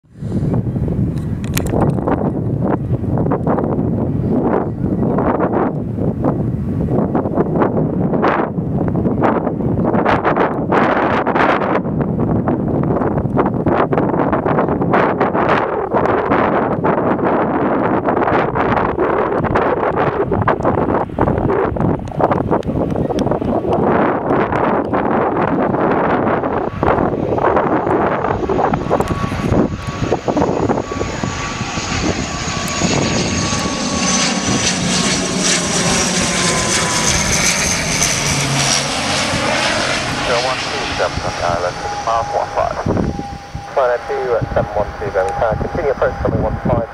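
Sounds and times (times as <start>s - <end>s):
turboprop airliner drone: 0.0s - 46.9s
wind buffeting microphone: 0.0s - 46.9s
engine high whine: 15.4s - 46.9s.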